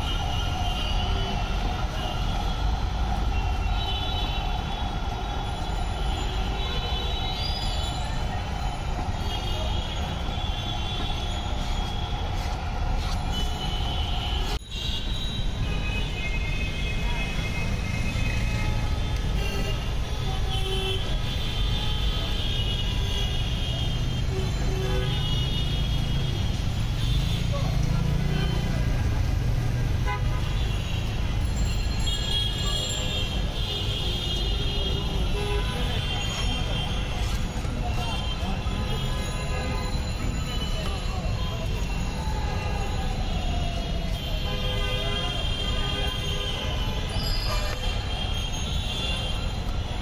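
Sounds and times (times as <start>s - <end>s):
low rumble of traffic: 0.0s - 50.0s
car horns tooting: 30.0s - 40.8s.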